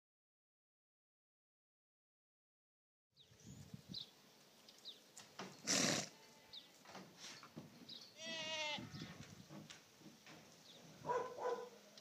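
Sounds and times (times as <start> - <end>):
donkey snorting: 5.6 - 6.2.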